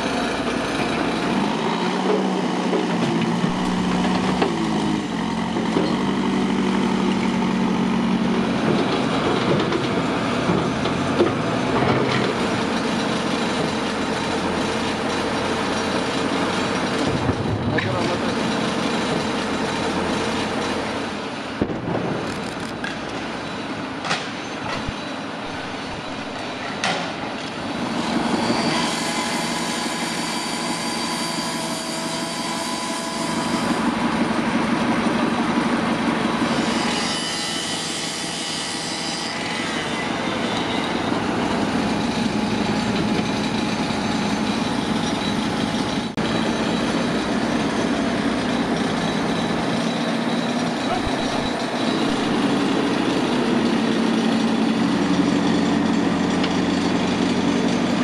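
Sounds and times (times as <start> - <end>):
heavy machinery engine running: 0.0 - 38.7, 39.3 - 58.0.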